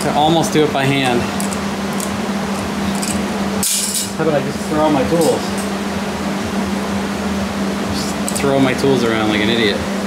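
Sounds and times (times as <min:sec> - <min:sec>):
fans rushing hum: 0:00.0 - 0:10.0.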